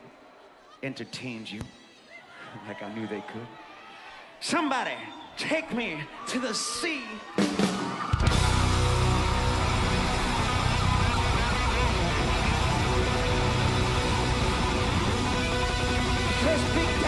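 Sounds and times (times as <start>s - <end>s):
live rock band: 7.4s - 17.0s
electric guitar vamp: 8.2s - 17.0s.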